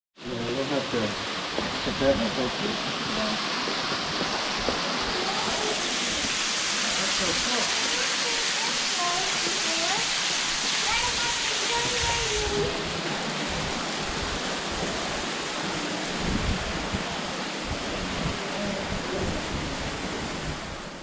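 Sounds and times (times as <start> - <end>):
falling water rushing: 0.2 - 21.0.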